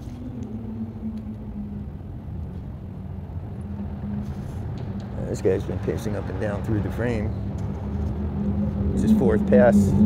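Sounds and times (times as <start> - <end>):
constant low hum: 0.0 - 10.0
vehicle engines rumbling: 0.0 - 10.0.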